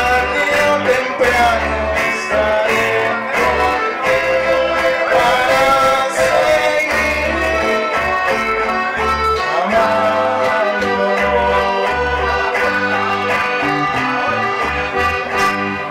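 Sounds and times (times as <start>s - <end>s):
accordion melody: 0.0s - 15.9s
acoustic guitar: 0.0s - 15.9s
electric bass held notes: 0.0s - 15.9s.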